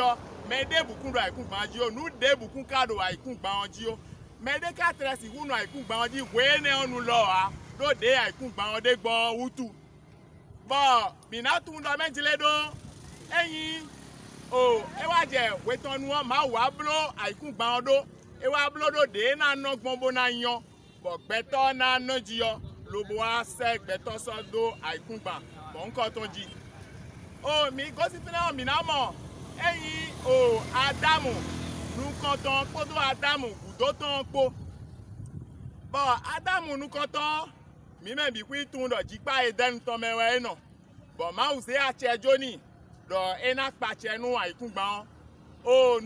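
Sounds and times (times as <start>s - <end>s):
man speaking: 0.0s - 9.8s, 10.6s - 34.6s, 35.9s - 40.6s, 41.2s - 46.0s
man's voice drawn out: 0.0s - 9.8s, 10.6s - 26.7s, 27.4s - 34.6s, 35.9s - 40.6s, 41.2s - 46.0s
motorcycle passing: 0.0s - 10.6s, 11.8s - 18.5s, 22.8s - 36.0s.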